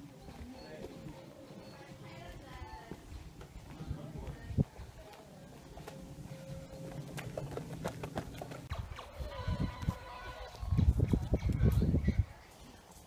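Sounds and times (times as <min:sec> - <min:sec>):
irregular footsteps: 0:00.0 - 0:09.1
wind on microphone: 0:08.7 - 0:12.5.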